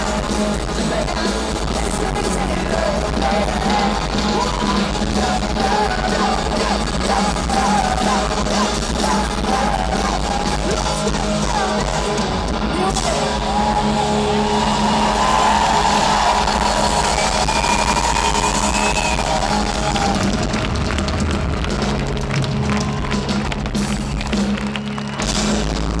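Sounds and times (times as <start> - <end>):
rock band playing live: 0.0 - 26.0.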